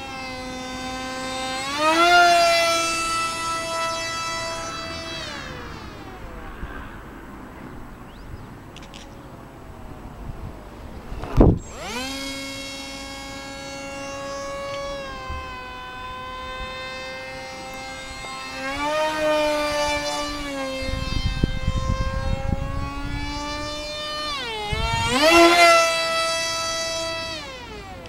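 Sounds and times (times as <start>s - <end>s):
rc jet motor whining: 0.0s - 7.3s, 10.9s - 28.0s
wind rumble on microphone: 4.4s - 8.7s, 9.5s - 11.8s, 18.7s - 25.9s.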